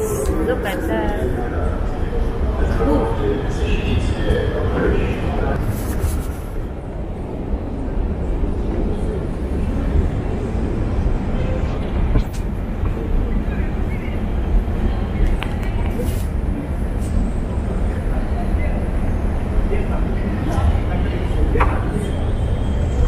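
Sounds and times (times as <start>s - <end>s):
murmur of voices: 0.0s - 23.0s.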